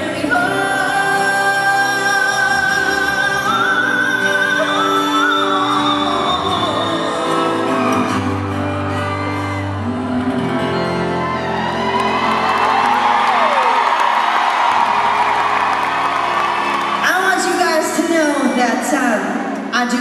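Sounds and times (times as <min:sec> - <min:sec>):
woman singing: 0:00.0 - 0:08.5
acoustic guitars: 0:00.0 - 0:18.7
crowd cheering and whooping: 0:06.0 - 0:18.9.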